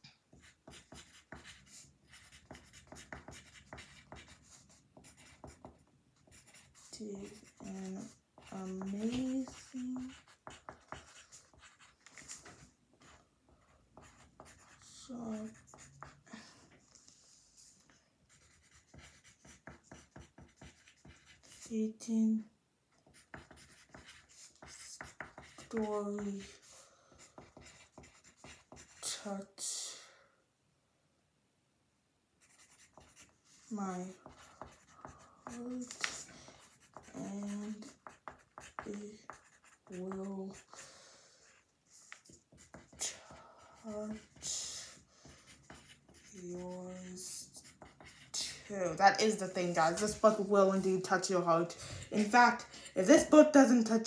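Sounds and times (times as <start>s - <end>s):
pencil writing on paper: 0.3s - 16.3s, 17.6s - 21.9s, 23.0s - 29.2s, 32.4s - 54.0s.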